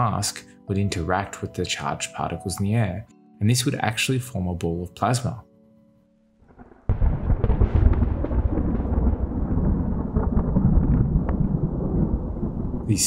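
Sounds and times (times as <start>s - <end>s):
thunder crackles: 6.5s - 13.0s
thunder rumbling: 6.5s - 13.0s.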